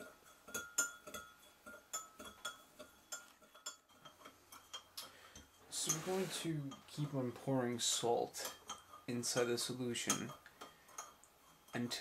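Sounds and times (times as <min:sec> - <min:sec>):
spoon clinking against glass: 0:00.0 - 0:07.1, 0:08.4 - 0:12.0.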